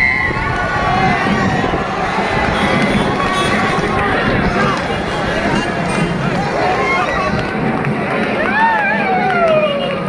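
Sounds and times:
crowd calling and shouting: 0:00.0 - 0:10.0.

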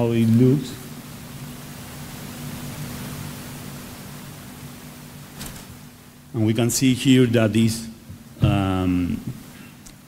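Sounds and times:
low even hum: 0:00.0 - 0:10.0
steady hiss: 0:00.0 - 0:10.0.

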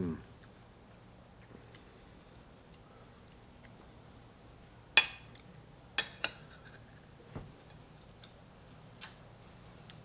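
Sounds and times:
fork clinking on ceramic plate: 0:06.0 - 0:06.8.

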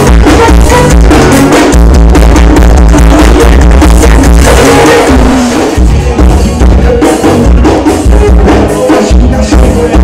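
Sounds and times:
heavy deep bass beat: 0:00.0 - 0:10.0
live band music: 0:00.0 - 0:10.0.

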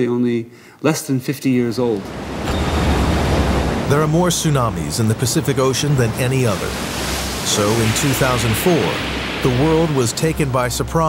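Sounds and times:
ocean wave breaking: 0:02.0 - 0:11.0.

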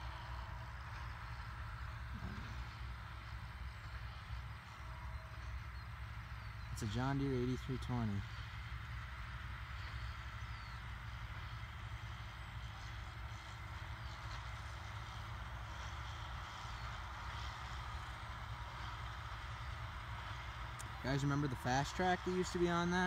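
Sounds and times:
distant tractor diesel engine: 0:00.0 - 0:23.0.

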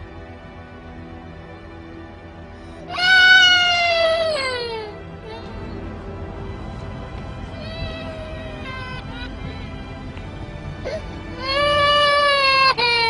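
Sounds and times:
background music: 0:00.0 - 0:13.0
toddler crying: 0:02.9 - 0:05.7, 0:07.6 - 0:09.2, 0:10.9 - 0:13.0.

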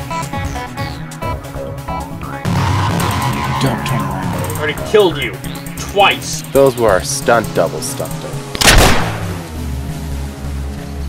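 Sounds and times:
background music: 0:00.0 - 0:11.0
pistol gunshot: 0:08.5 - 0:09.5.

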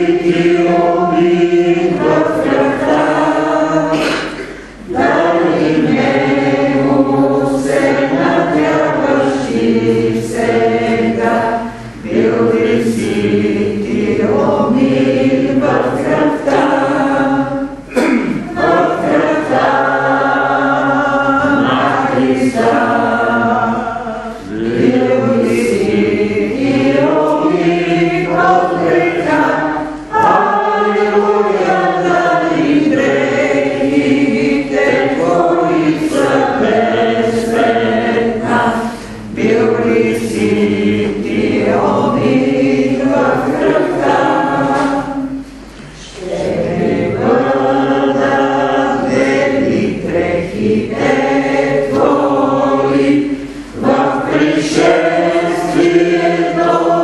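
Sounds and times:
congregation singing a hymn: 0:00.0 - 0:57.0.

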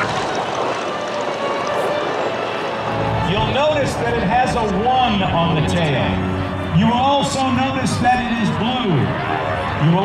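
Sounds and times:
propeller plane engine drone: 0:00.0 - 0:10.0.

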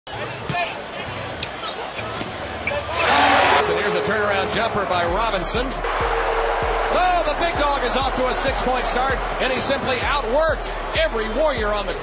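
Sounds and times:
arena crowd noise: 0:00.1 - 0:12.0.

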